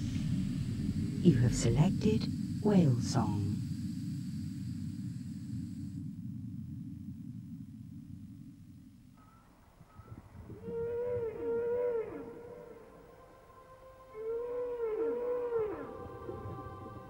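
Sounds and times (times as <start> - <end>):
whale song moaning calls: 9.9 - 17.0.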